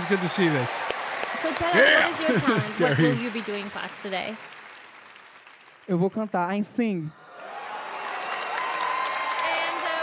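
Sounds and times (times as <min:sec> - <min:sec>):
audience applauding and cheering: 0:00.0 - 0:10.0
person shouting woo: 0:01.7 - 0:03.2.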